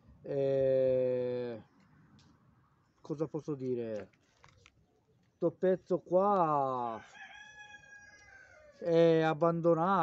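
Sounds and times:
man's voice: 8.8 - 10.0.

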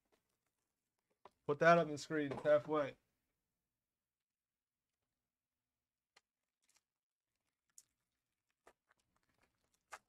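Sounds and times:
foil pack crinkling: 6.2 - 10.0.

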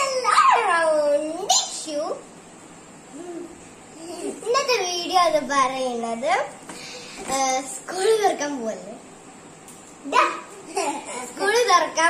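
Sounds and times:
girl yelping: 0.0 - 0.9.

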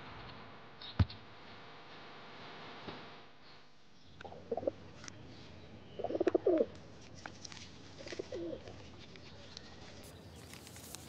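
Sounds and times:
pigeon cooing: 4.3 - 4.8, 6.0 - 6.7, 8.1 - 8.7.

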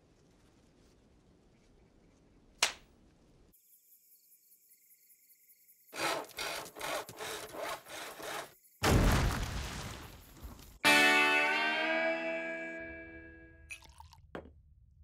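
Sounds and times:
rasping scraping strokes: 6.0 - 8.6.

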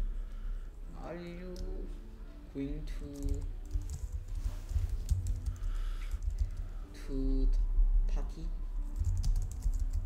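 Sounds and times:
steady low hum: 0.0 - 10.0
keyboard typing: 3.0 - 6.7, 8.9 - 10.0.

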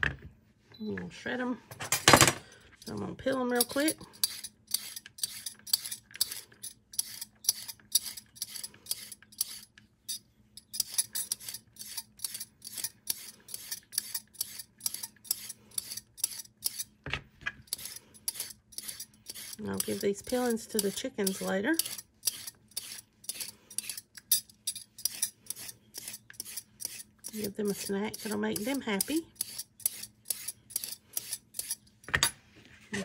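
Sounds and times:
peeler scraping a carrot: 2.8 - 17.0, 17.6 - 32.0.

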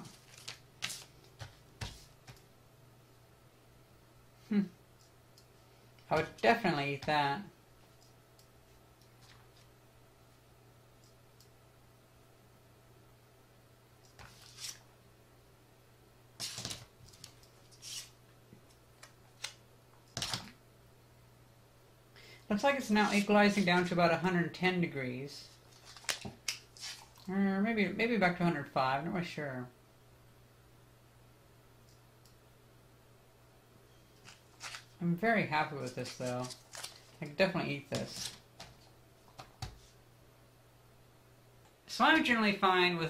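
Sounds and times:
faint steady low hum: 0.0 - 43.0
crinkling rustles of packaging: 25.6 - 27.3, 34.2 - 35.0, 35.8 - 37.2.

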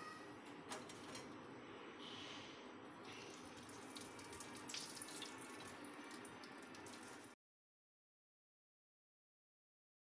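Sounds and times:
faint running water: 3.0 - 7.4.

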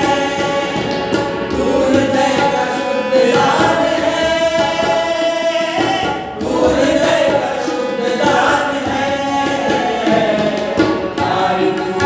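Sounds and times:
harmonium: 0.0 - 12.0
tabla: 0.0 - 12.0.

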